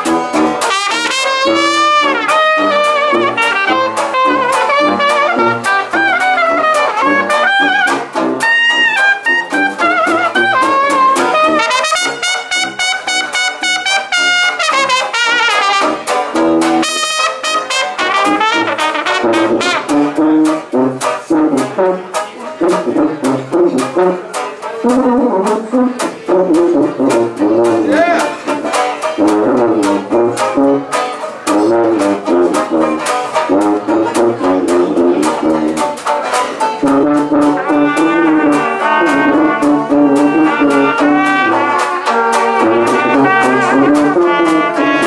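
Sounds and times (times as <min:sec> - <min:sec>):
trombone solo: 0:00.0 - 0:28.2, 0:29.1 - 0:36.0, 0:36.7 - 0:45.0
jazz band playing: 0:00.0 - 0:45.0
trumpet holding high note: 0:00.6 - 0:16.1, 0:16.8 - 0:19.9, 0:37.6 - 0:45.0.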